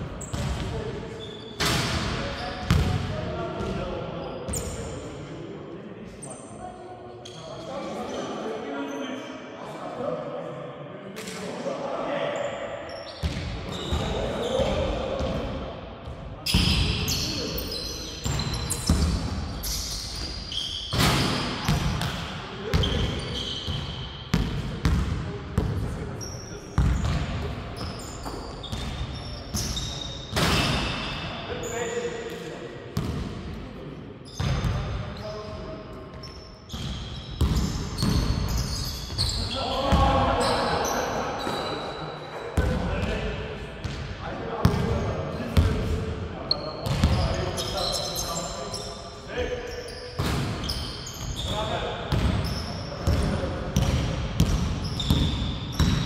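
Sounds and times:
shoe squeaks: 0.2 - 0.5, 1.1 - 1.7, 4.3 - 4.9, 7.2 - 9.3, 12.3 - 14.7, 16.5 - 21.8, 22.8 - 24.1, 26.2 - 27.2, 27.8 - 32.2, 34.2 - 42.4, 46.5 - 53.2, 54.5 - 56.0.

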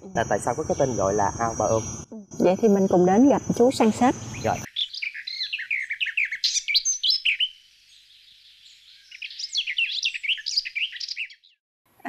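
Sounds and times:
small birds chirping: 0.0 - 11.6.

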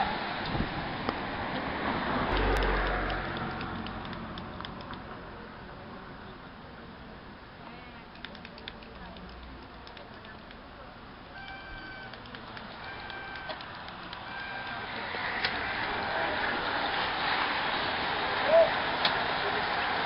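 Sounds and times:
bicycles passing: 0.0 - 5.4, 11.4 - 20.0
short beeping tones: 11.4 - 13.6.

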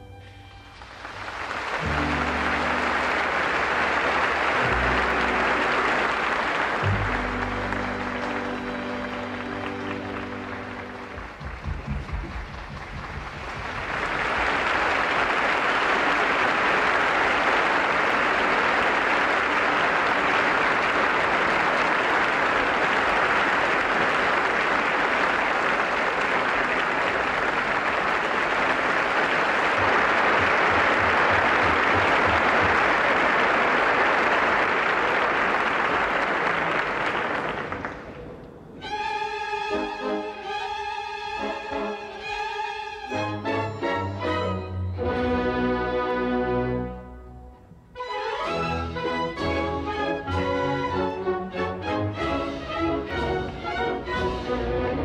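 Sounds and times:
orchestra playing chords: 0.0 - 55.0
audience applause: 0.7 - 38.4.

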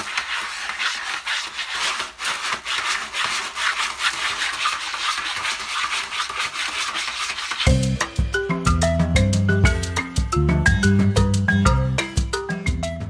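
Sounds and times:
cat scratching in litter: 0.0 - 7.7
upbeat marimba music: 7.7 - 13.0.

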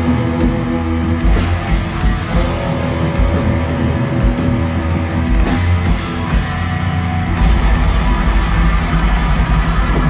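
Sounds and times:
bass guitar: 0.0 - 10.0
distorted electric guitars: 0.0 - 10.0
drums: 0.0 - 10.0.

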